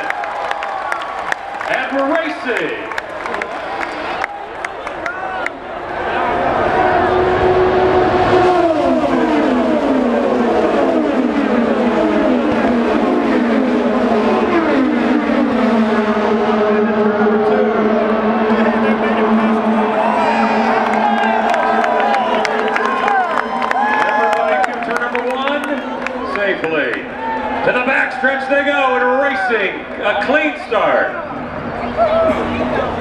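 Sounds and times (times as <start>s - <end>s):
race cars passing at full throttle: 0.0s - 33.0s.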